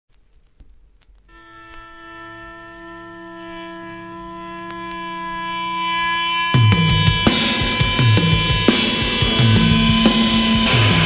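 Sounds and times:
electric guitar feedback: 1.3s - 11.0s
higher feedback tone: 1.3s - 11.0s.

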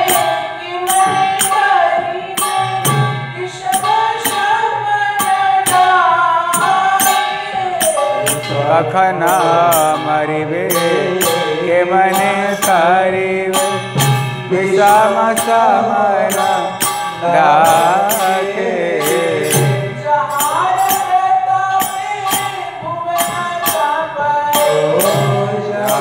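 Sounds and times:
metallic percussion strikes: 0.0s - 26.0s
person chanting a melody: 6.5s - 13.8s, 14.5s - 21.0s, 21.8s - 26.0s.

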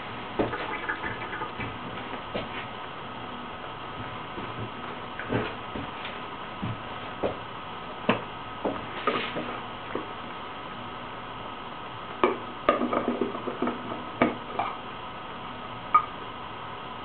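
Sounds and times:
faint hum: 0.0s - 17.0s.

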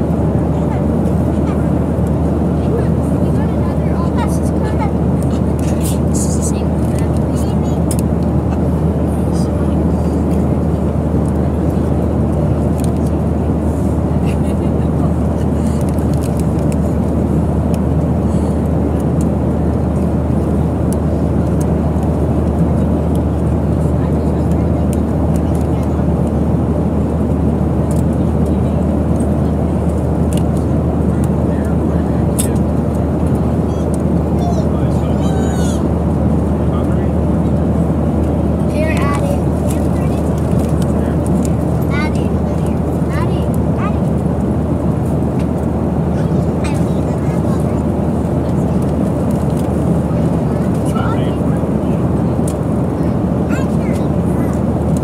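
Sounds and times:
airliner cabin rumble: 0.0s - 55.0s
faint murmurs: 0.0s - 55.0s.

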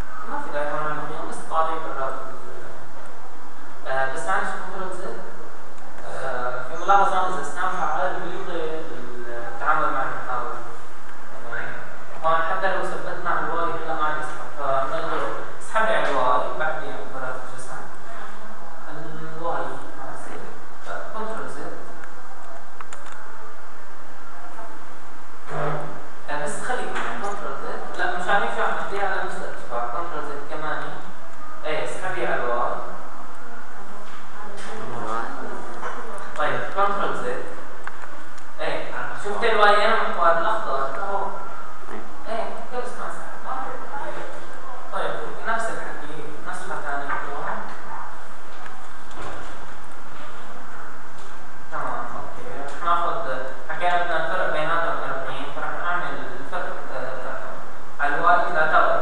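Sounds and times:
person speaking: 0.0s - 23.5s, 24.2s - 59.0s
microphone hiss: 0.0s - 59.0s
computer mouse clicks: 22.8s - 23.2s.

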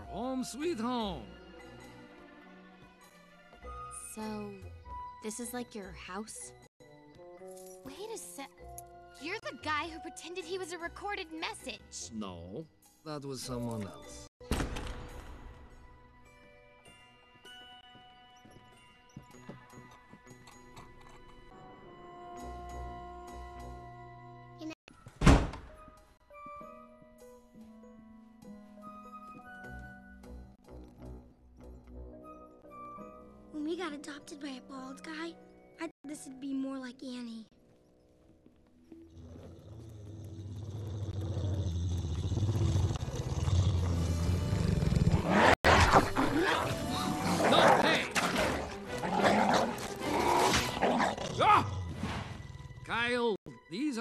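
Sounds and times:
cartoon creature snarling: 39.1s - 51.8s.

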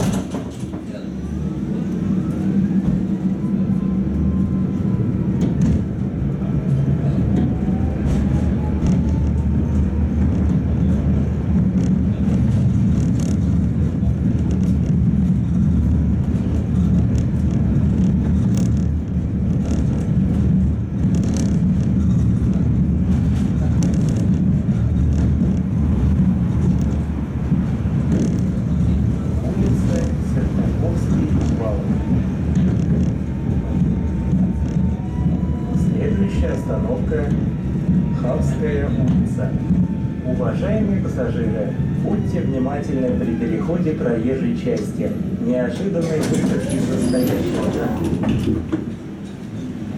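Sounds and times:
wheels clicking on rails: 0.0s - 1.0s, 5.3s - 40.2s, 44.5s - 49.9s
tram running gear rumble: 0.0s - 49.9s.

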